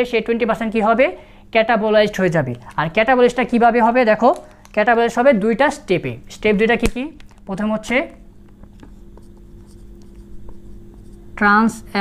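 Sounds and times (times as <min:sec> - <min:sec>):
steady low hum: 0:00.0 - 0:12.0
marker pen squeaking on whiteboard: 0:08.6 - 0:11.4.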